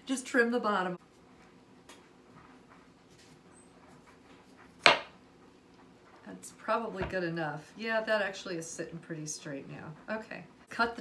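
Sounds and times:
knife knocking cutting board: 4.8s - 5.2s.

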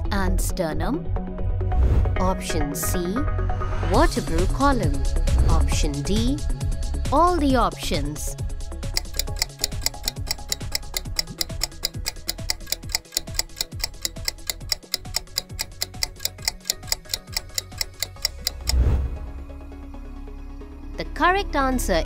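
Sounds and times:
background music: 0.0s - 22.0s
clock-like ticking: 9.0s - 18.9s.

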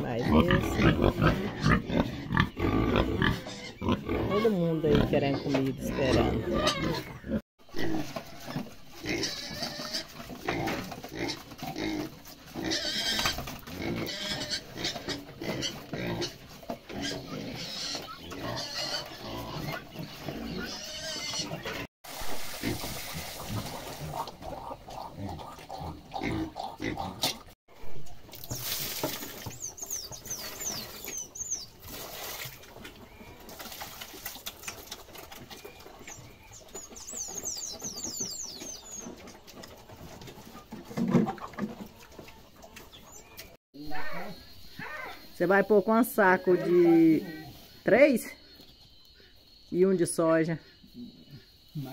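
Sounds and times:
pigs chewing and munching feed: 0.0s - 44.2s.

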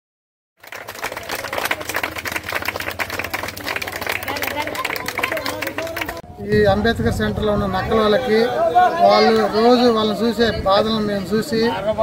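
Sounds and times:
crowd clapping: 0.6s - 6.3s
street hubbub: 0.6s - 12.0s.

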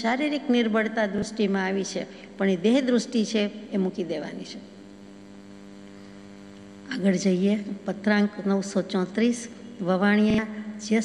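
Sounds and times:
woman's voice: 0.0s - 4.7s, 6.9s - 11.0s
electrical mains hum: 0.0s - 11.0s.

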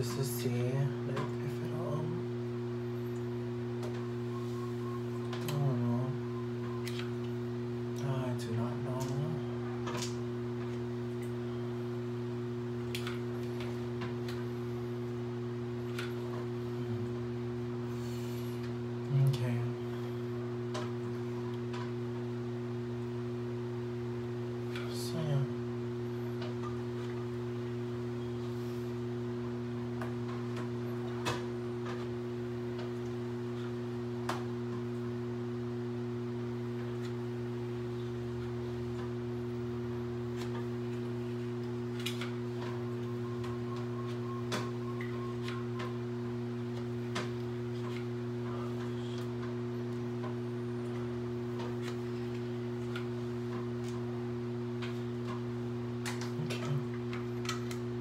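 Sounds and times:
low electrical hum: 0.0s - 58.0s.

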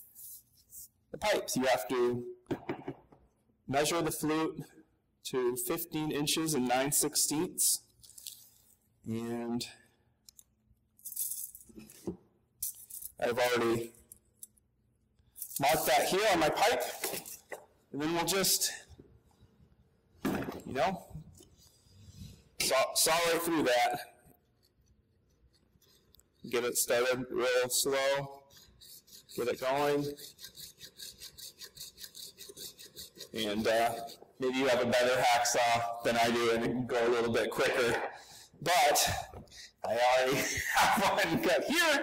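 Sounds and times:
hacksaw cutting plastic pipe: 28.5s - 34.3s.

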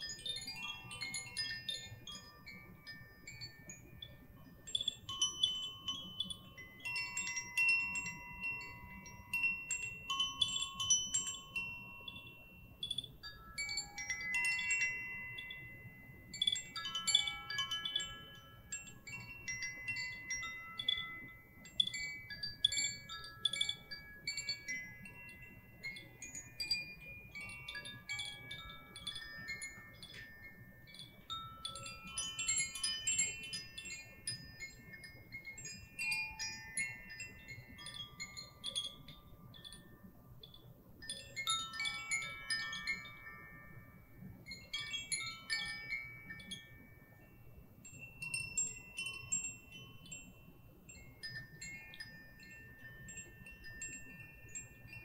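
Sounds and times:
wind chimes tinkling: 0.0s - 55.0s.

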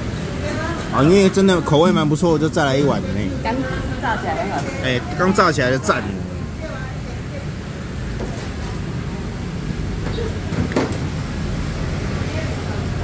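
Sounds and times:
faint background voices: 0.0s - 10.6s.

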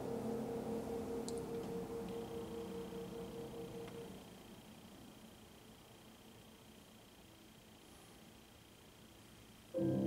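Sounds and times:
steady high whine: 0.0s - 10.0s
grand piano chord: 9.8s - 10.0s.

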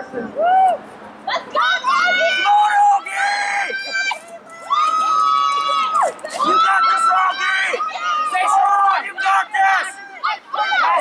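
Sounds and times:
spectators cheering and yelling: 0.2s - 11.0s.

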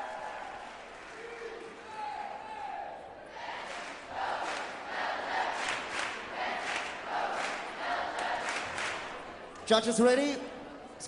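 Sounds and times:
crowd chanting and shouting: 0.0s - 11.0s.

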